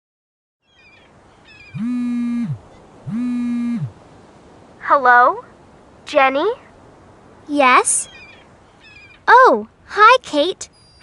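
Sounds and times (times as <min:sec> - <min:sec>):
bird cries: 0:00.6 - 0:03.9, 0:08.0 - 0:09.3, 0:10.6 - 0:11.0
soft beach ambience: 0:00.6 - 0:11.0
mobile phone buzzing: 0:01.8 - 0:03.9.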